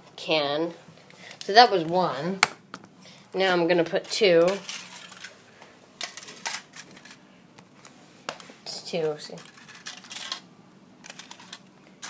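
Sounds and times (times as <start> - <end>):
foil rustling: 4.1 - 5.4.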